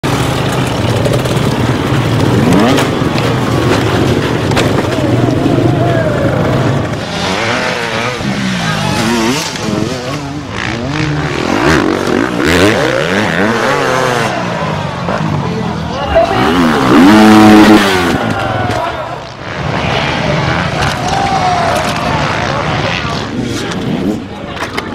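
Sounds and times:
dirt bike engines revving: 0.0 - 24.9
people's voices: 0.6 - 24.9.

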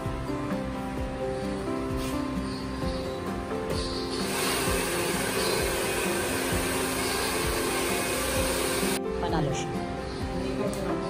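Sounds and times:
background music: 0.0 - 11.0
hair dryer blowing: 4.1 - 9.0.

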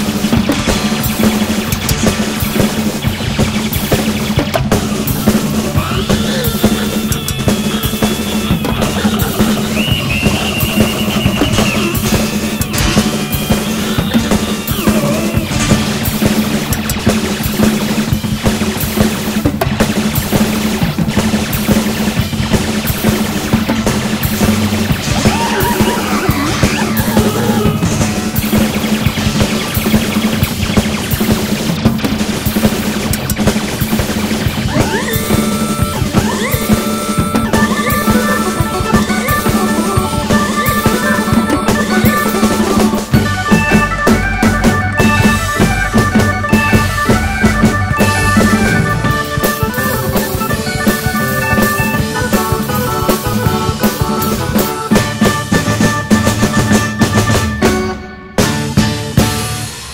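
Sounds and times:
busy rock drumming: 0.0 - 59.9
sliding keyboard lead: 34.8 - 58.0.

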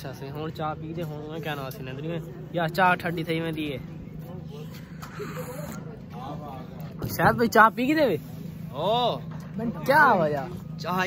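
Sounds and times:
faint background voices: 0.0 - 10.8.

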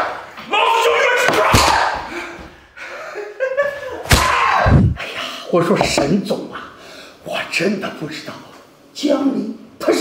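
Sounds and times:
hard hit of a blow: 4.1 - 5.0
person crying out: 4.2 - 5.0.

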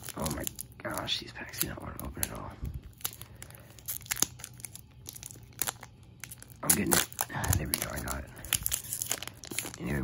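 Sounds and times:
foil wrapper crinkling: 0.0 - 10.0.

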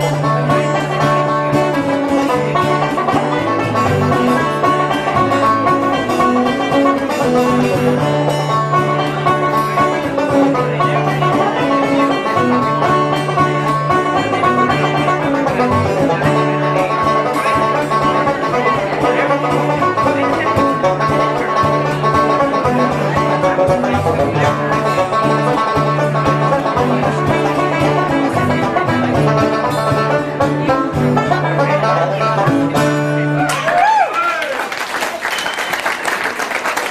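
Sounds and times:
guitars strummed and picked: 0.0 - 33.8
banjo-led folk music: 0.0 - 36.9
audience applause and cheering: 33.4 - 36.9.

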